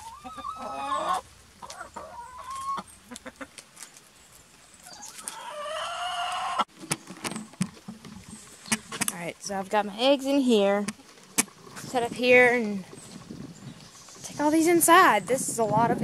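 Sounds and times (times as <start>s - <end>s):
hen calls: 0.0s - 3.5s
hens clucking: 0.0s - 3.7s, 4.8s - 9.6s
hens pecking leaves: 0.0s - 15.8s.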